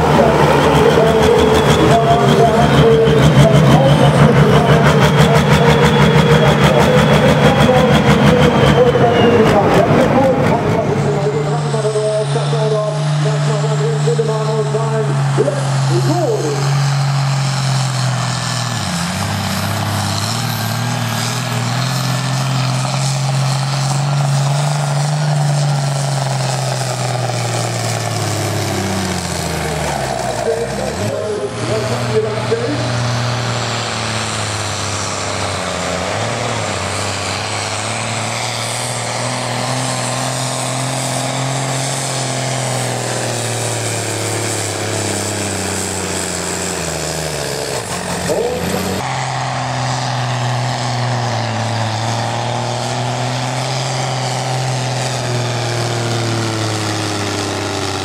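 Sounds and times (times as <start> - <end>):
tractor diesel engines revving: 0.0 - 58.0.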